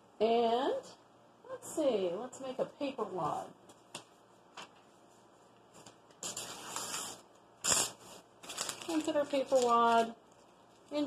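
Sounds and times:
paper crumpling by hand: 0:05.8 - 0:11.0.

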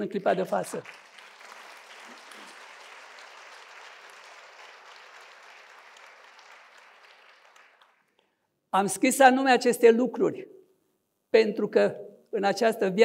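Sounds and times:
audience applauding: 0:00.6 - 0:08.3.

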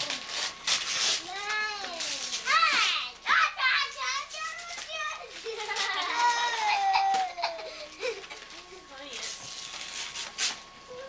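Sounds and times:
wrapping paper tearing: 0:00.0 - 0:11.0
children babbling: 0:03.3 - 0:08.3
children laughing: 0:05.2 - 0:08.8.

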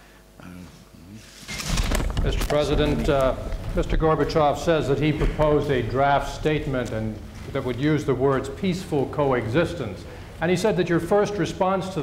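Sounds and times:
rustling noise with low rumble: 0:01.2 - 0:09.9.

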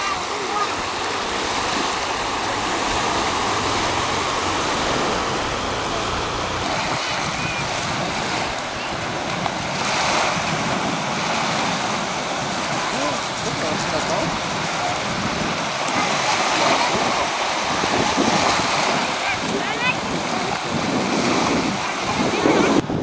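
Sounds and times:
small waves breaking on beach: 0:00.0 - 0:23.0.

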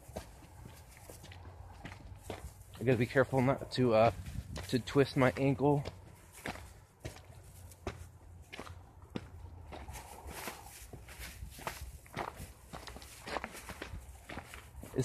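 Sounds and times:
footsteps on rocky trail: 0:00.0 - 0:15.0.

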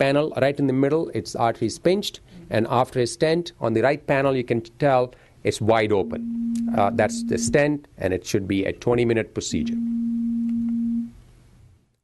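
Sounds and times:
steady low tone: 0:06.0 - 0:07.7.

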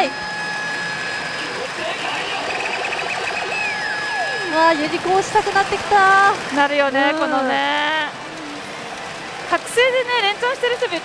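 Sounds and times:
high electronic beeps: 0:00.0 - 0:06.0
electronic din of a gaming hall: 0:00.0 - 0:11.0.

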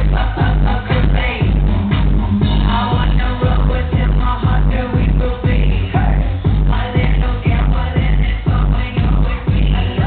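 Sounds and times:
electro-pop dance song: 0:00.0 - 0:10.0
kick drum beats: 0:00.0 - 0:10.0.

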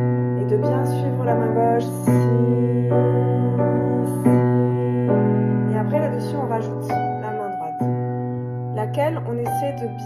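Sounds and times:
piano playing a waltz: 0:00.0 - 0:10.0.

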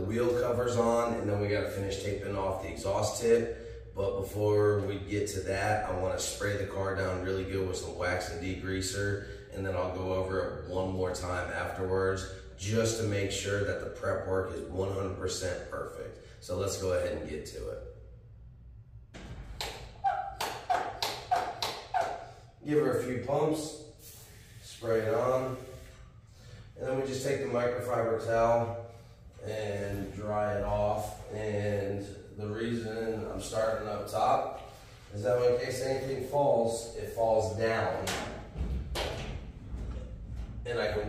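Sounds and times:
low thuds: 0:38.1 - 0:41.0.

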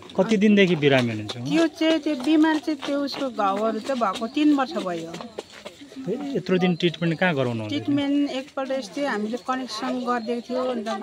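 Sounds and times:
woman speaking: 0:01.5 - 0:05.4, 0:07.7 - 0:11.0.

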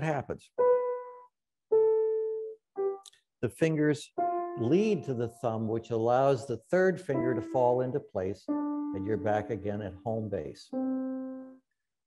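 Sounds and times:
grand piano descending scale: 0:00.6 - 0:03.1, 0:04.0 - 0:11.6.

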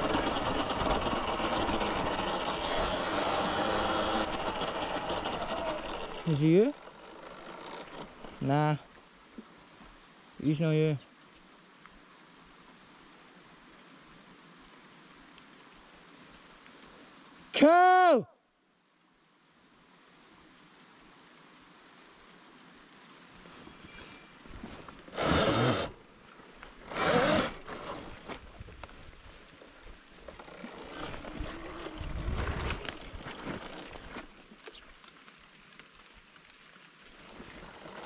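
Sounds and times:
electric dirt bike riding: 0:00.0 - 0:08.7, 0:24.5 - 0:26.0, 0:26.7 - 0:29.0, 0:30.1 - 0:34.5, 0:37.1 - 0:38.0
wind buffeting the camera: 0:31.0 - 0:33.6.

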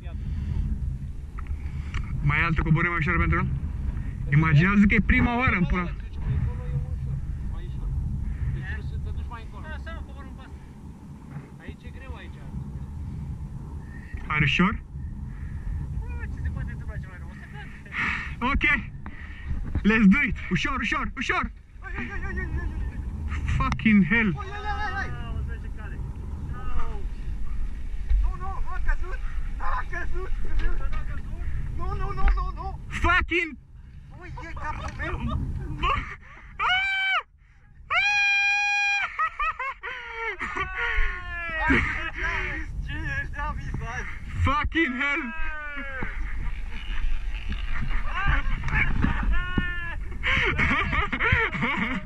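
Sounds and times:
low steady rumble: 0:00.0 - 0:52.0
man screaming: 0:36.5 - 0:37.3, 0:37.9 - 0:39.2, 0:49.3 - 0:50.0.

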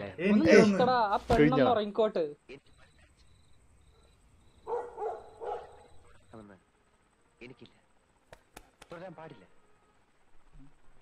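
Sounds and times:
dog barking: 0:04.6 - 0:06.0.

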